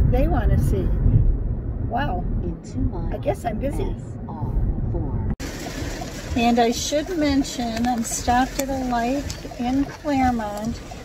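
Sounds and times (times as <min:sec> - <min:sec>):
car cabin rumble: 0:00.0 - 0:11.0
heavy rain on car: 0:05.4 - 0:11.0.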